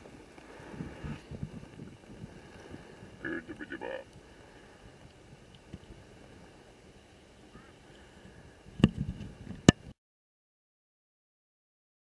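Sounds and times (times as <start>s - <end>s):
faint background noise: 0.0s - 10.0s.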